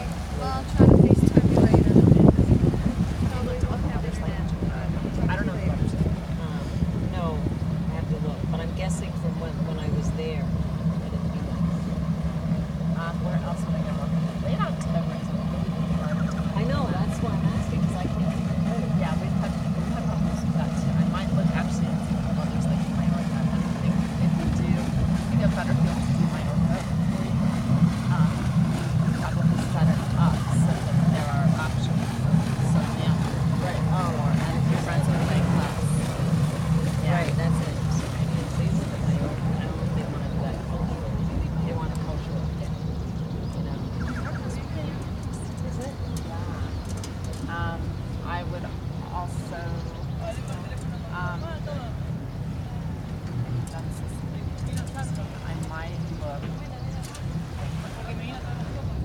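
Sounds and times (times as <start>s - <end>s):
boat engine humming: 0.0s - 59.0s.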